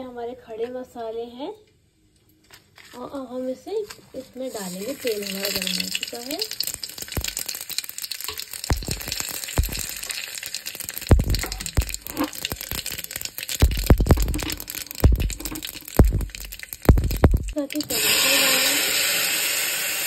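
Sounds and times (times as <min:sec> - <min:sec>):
spices crackling in hot oil: 0:03.7 - 0:20.0
dull low thumps: 0:08.7 - 0:10.0, 0:11.1 - 0:12.9, 0:13.6 - 0:17.6.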